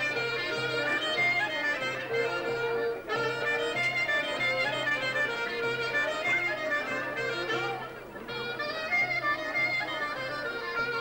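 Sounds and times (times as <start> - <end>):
wavering wind instrument melody: 0.0 - 11.0.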